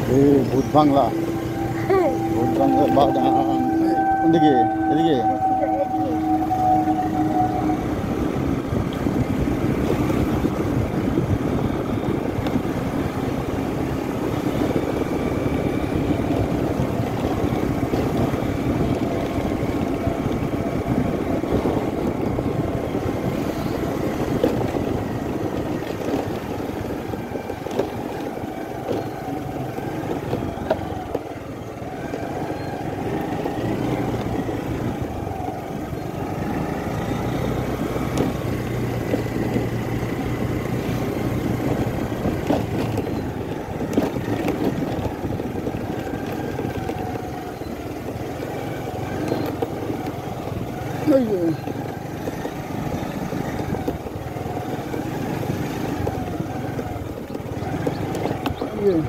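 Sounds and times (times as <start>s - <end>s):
vehicle engine running: 0.0s - 59.0s.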